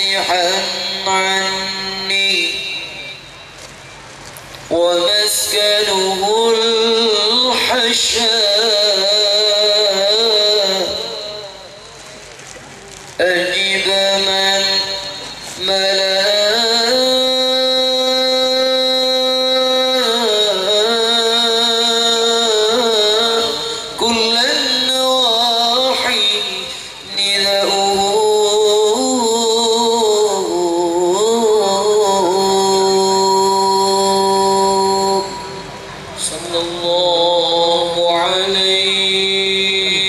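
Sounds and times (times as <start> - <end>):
man singing into a microphone: 0.0 - 3.4, 4.6 - 12.1, 13.2 - 40.0.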